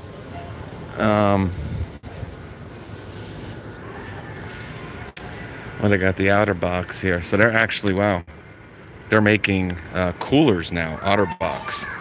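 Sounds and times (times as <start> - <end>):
store interior background noise: 0.0 - 12.0.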